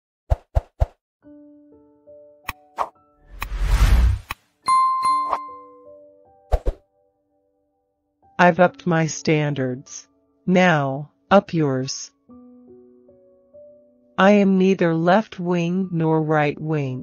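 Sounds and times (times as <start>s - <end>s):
whoosh: 2.8s - 4.4s
bright bell-like ding: 4.7s - 5.8s.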